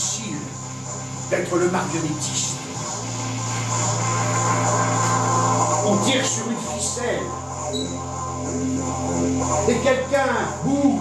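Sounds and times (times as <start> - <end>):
background music holding low note: 0.0 - 11.0.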